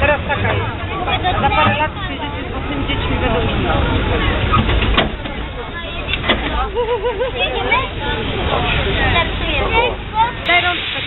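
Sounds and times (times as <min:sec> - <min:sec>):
people talking: 0:00.0 - 0:11.0
railway carriage rolling: 0:00.0 - 0:11.0.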